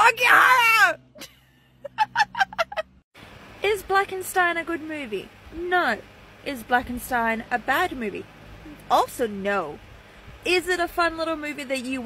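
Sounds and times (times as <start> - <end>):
woman laughing: 1.2 - 3.0.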